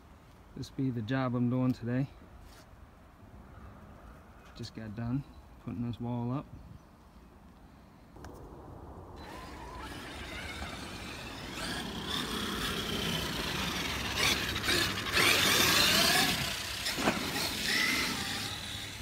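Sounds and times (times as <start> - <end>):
electric motor whining: 9.2 - 19.0.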